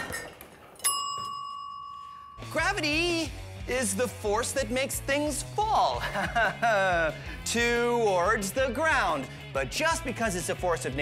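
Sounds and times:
bell-like ding: 0.8 - 2.7.

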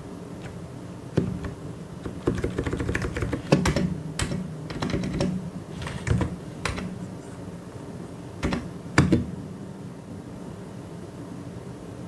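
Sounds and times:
typing on mechanical keyboard: 1.2 - 7.0, 8.4 - 9.2.

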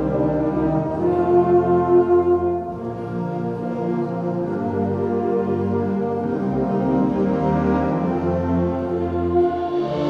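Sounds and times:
concert band sustained chords: 0.0 - 10.0.

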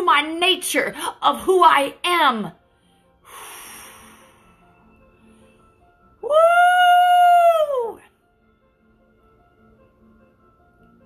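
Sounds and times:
breathy exhale: 3.2 - 5.6.

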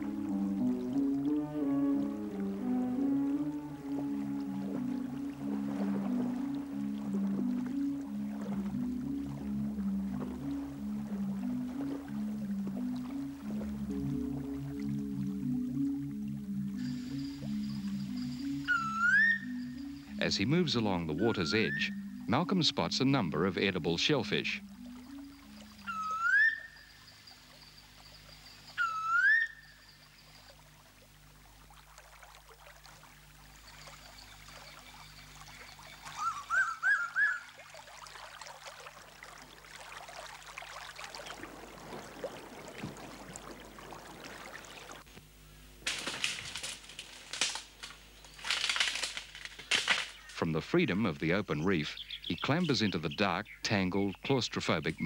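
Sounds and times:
bird short rising notes: 0.0 - 22.9, 24.2 - 26.8
faint low steady drone: 0.0 - 36.1
bird rising whistles: 16.8 - 20.2, 25.3 - 27.0, 28.7 - 29.8, 36.1 - 37.5.

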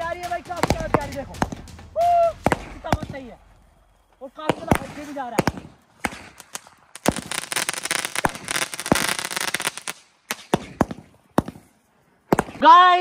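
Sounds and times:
fireworks bangs and crackle: 0.0 - 11.7.

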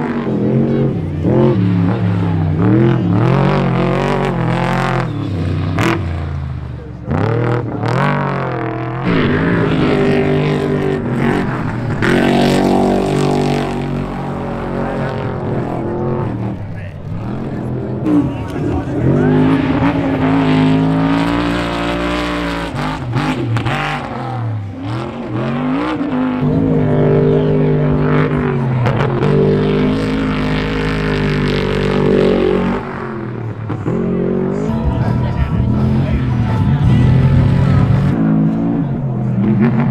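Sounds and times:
truck engines revving: 0.0 - 39.9.

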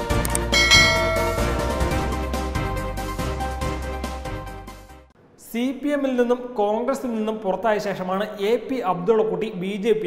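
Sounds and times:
background music: 0.0 - 5.1
bell-like chime: 0.6 - 2.3.

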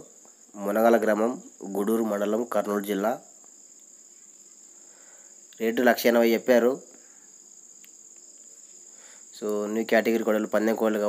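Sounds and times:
man speaking: 0.0 - 3.2, 5.6 - 6.9, 9.4 - 11.0
crickets chirring: 0.0 - 11.0.

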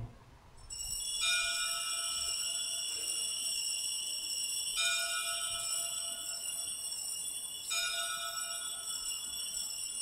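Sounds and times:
altar bells ringing: 0.6 - 10.0.

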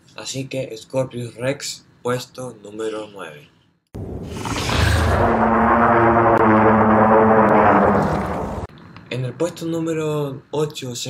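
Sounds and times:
dinosaur roar: 4.2 - 8.7.

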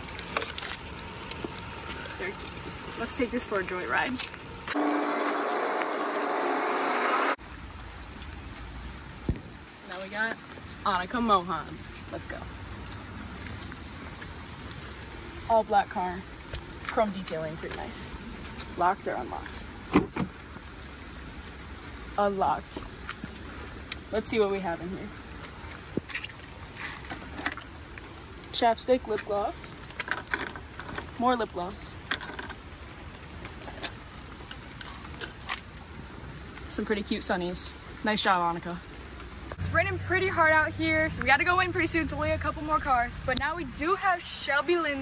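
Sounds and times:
steady rain falling: 0.0 - 45.0.

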